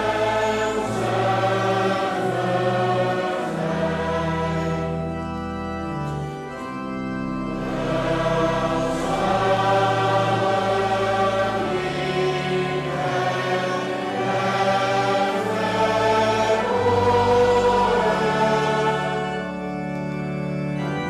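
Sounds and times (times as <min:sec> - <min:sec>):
congregation singing a hymn: 0:00.0 - 0:21.0
organ playing: 0:00.0 - 0:21.0.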